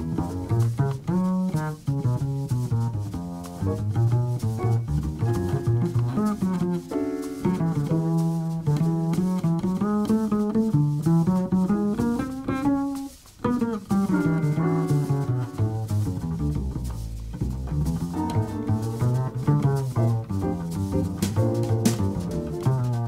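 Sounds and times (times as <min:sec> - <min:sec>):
acoustic piano playing: 0:00.0 - 0:23.0
light drums and cymbals: 0:00.0 - 0:23.0
plucked double bass: 0:00.0 - 0:23.0.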